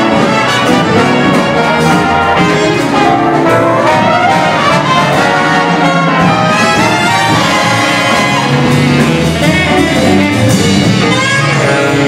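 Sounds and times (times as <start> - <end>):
jazz big band playing: 0.0 - 12.0
trumpets and trombones chords: 0.0 - 12.0.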